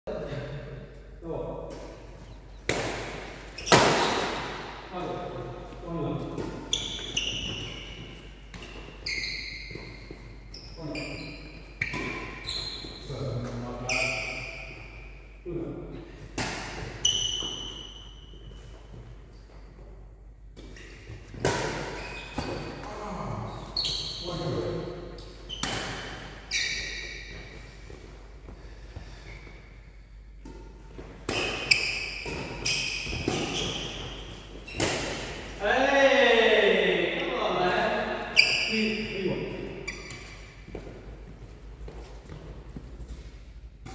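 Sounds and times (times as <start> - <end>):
rackets hitting shuttlecock: 2.6 - 4.7, 30.4 - 35.6
shoes squeaking on wooden floor: 6.6 - 13.1, 20.7 - 22.8, 25.4 - 29.5, 31.4 - 35.4.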